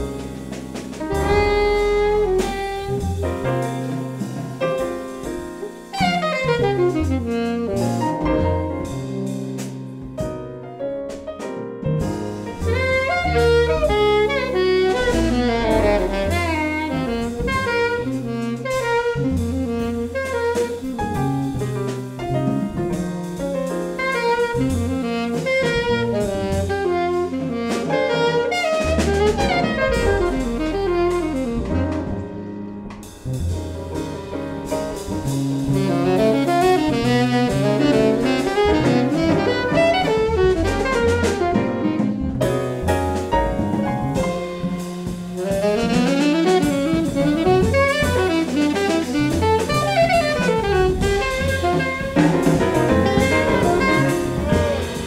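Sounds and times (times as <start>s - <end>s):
alto saxophone solo: 0.0s - 9.9s, 12.5s - 55.0s
double bass: 0.0s - 55.0s
drum kit: 0.0s - 55.0s
piano: 0.0s - 55.0s.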